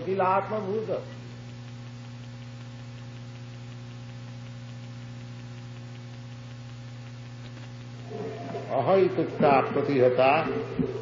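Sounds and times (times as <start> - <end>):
electrical mains hum: 0.0 - 11.0
person speaking: 8.0 - 11.0.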